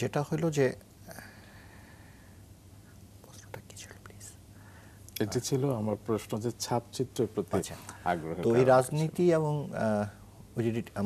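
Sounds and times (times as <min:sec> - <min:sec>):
low steady hum: 0:00.0 - 0:11.0
man breathing: 0:01.1 - 0:02.5, 0:04.6 - 0:05.1.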